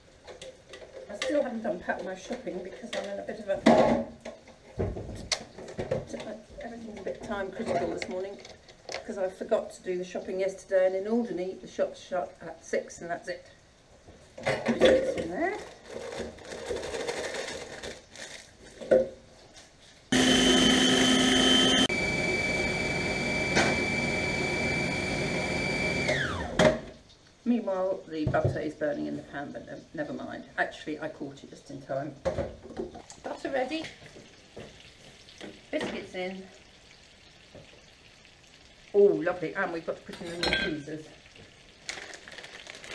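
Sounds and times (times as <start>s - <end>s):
food processor motor whine: 20.1s - 26.8s.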